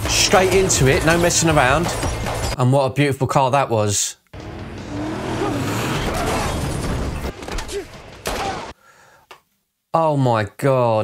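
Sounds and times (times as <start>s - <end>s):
vehicle noise and crashing: 0.0s - 2.6s, 4.4s - 8.8s.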